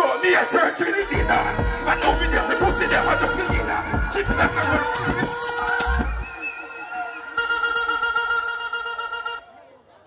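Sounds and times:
buzzy horn blast: 0:00.0 - 0:06.1, 0:07.3 - 0:09.5
held horn-like tones: 0:00.0 - 0:09.5.

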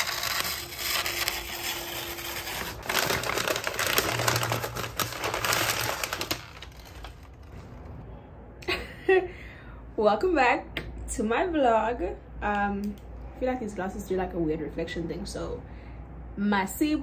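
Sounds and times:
packaging wrapper crinkling: 0:00.0 - 0:07.6.

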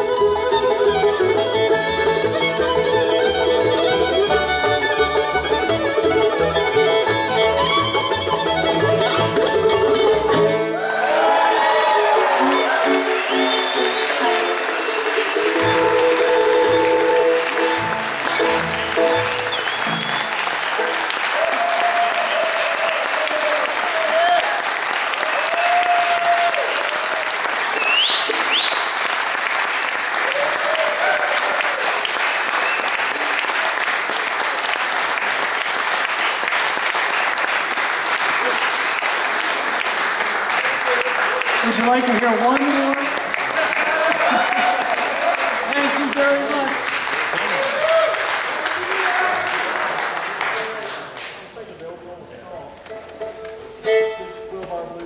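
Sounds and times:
bluegrass band playing: 0:00.0 - 0:21.4, 0:32.7 - 0:47.1, 0:52.4 - 0:55.0
audience applauding and cheering: 0:00.0 - 0:51.6
rising whistles: 0:13.1 - 0:15.2, 0:19.5 - 0:20.9, 0:27.8 - 0:28.9.

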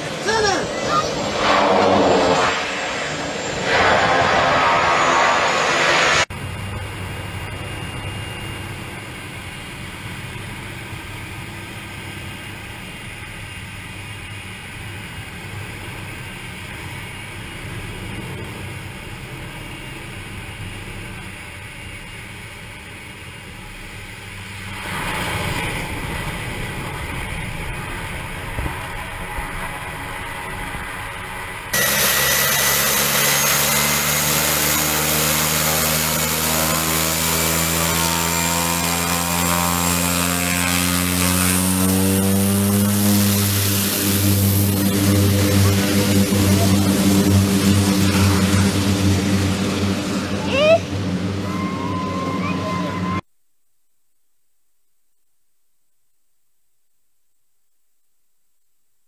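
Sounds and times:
loud engine with high whine: 0:00.0 - 0:53.2
muffled aircraft engine drone: 0:00.0 - 0:53.2.

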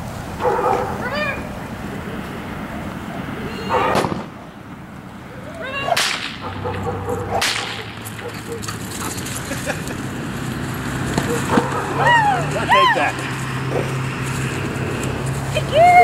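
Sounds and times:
short rising-and-falling calls: 0:03.1 - 0:04.0
whip cracks: 0:03.9 - 0:04.3, 0:05.9 - 0:06.5, 0:07.3 - 0:08.8.

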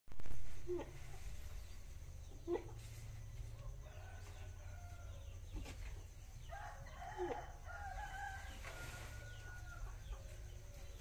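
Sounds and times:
low steady rumble: 0:00.1 - 0:11.0
faint rooster crowing: 0:03.2 - 0:11.0.

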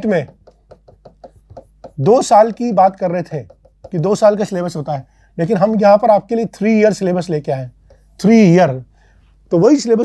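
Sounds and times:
pen tapping on a board: 0:00.0 - 0:04.8, 0:07.8 - 0:08.1.

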